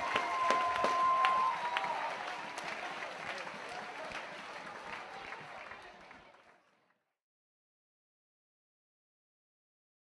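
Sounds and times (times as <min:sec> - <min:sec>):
audience cheering: 0:00.0 - 0:06.2
audience clapping: 0:00.0 - 0:07.1.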